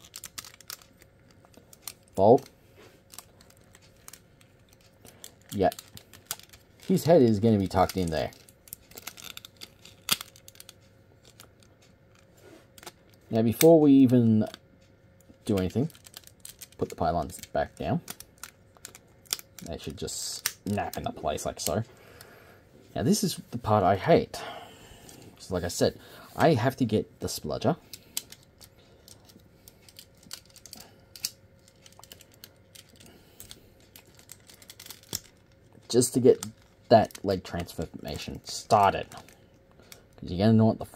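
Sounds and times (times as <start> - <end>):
plastic toy parts clicking: 0.0 - 2.5, 3.1 - 12.2, 15.2 - 21.8, 27.9 - 39.3.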